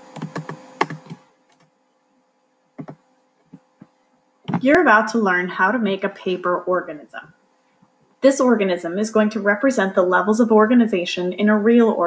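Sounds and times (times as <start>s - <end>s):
keyboard and mouse clicks: 0.0s - 1.7s, 2.8s - 3.9s
faint steady hum: 0.0s - 12.0s.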